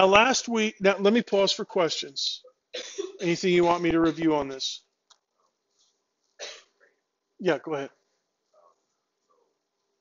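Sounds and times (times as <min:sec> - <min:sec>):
person coughing: 0:02.8 - 0:04.6, 0:06.4 - 0:06.8.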